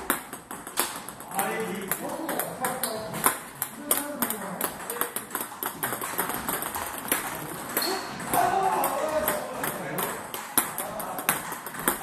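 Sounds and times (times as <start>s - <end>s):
table tennis balls clicking: 0.0s - 12.0s.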